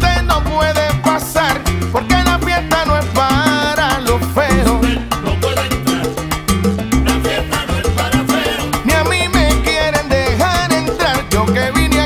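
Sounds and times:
salsa band playing: 0.0s - 12.0s.

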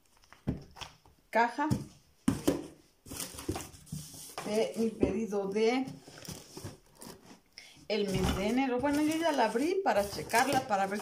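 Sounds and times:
cardboard scraping and rustling: 2.3s - 7.4s, 8.0s - 11.0s.

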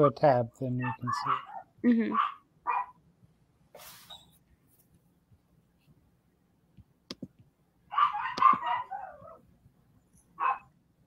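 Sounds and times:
animal calls: 0.8s - 2.4s.

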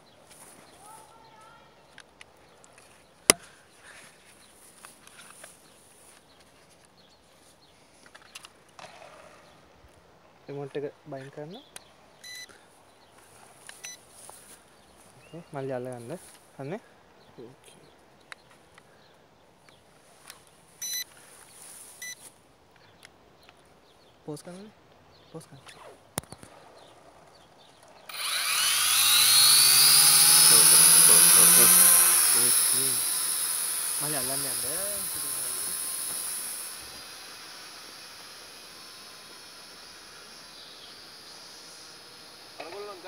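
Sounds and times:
faint electronic beep: 12.2s - 12.5s, 20.8s - 21.1s
drone propellers whirring: 28.1s - 43.0s.

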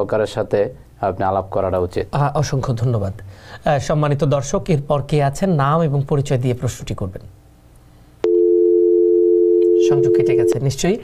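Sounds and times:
telephone dial tone: 8.2s - 10.6s.

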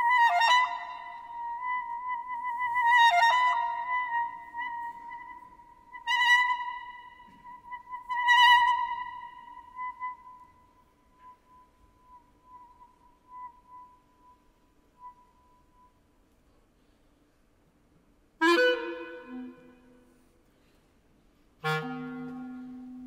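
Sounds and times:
clarinet holding high note: 18.4s - 20.2s, 21.6s - 23.0s.

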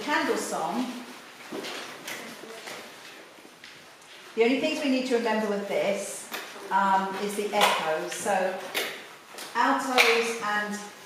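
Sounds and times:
sheet music rustling: 0.0s - 11.0s.

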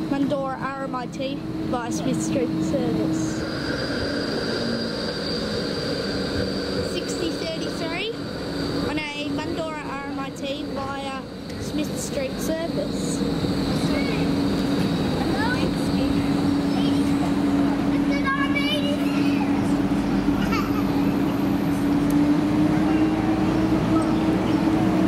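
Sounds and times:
tram electric hum and whine: 0.0s - 25.0s.

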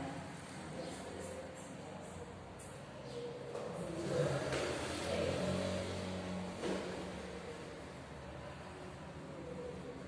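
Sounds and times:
vehicle engine passing by: 3.2s - 10.0s.

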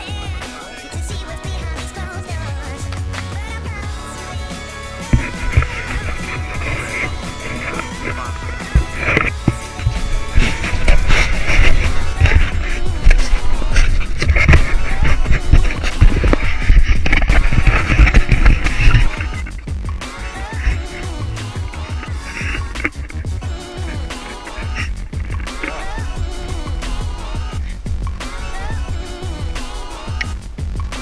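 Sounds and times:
background music: 0.0s - 31.0s
camera rumbling and knocking: 5.1s - 21.3s, 21.9s - 29.4s
wind noise on microphone: 5.1s - 30.8s.

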